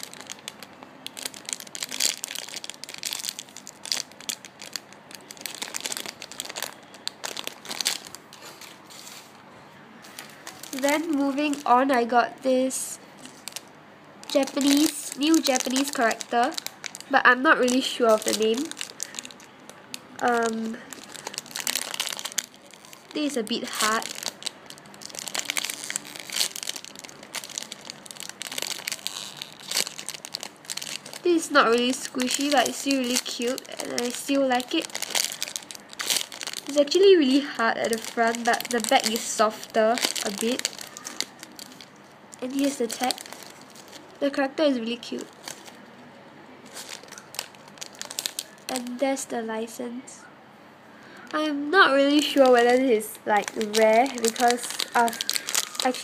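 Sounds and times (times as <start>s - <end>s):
plastic bag crinkling: 0.0s - 9.4s, 10.0s - 46.0s, 46.6s - 49.3s, 51.2s - 56.0s.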